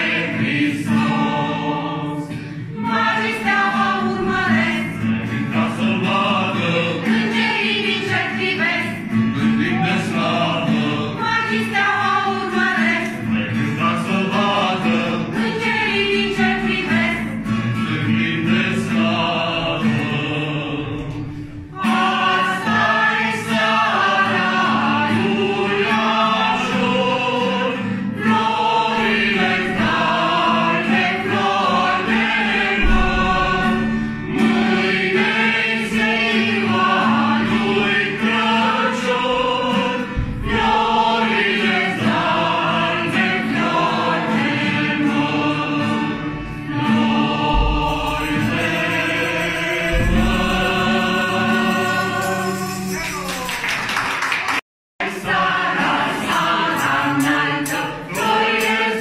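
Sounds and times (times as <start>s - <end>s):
group singing a carol: 0.0s - 53.5s, 55.0s - 59.0s
strummed acoustic guitar: 0.0s - 53.5s.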